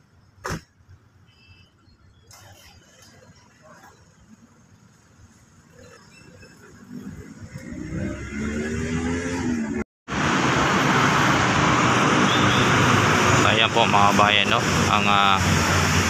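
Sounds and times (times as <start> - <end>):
vehicle engine approaching: 6.4 - 16.0.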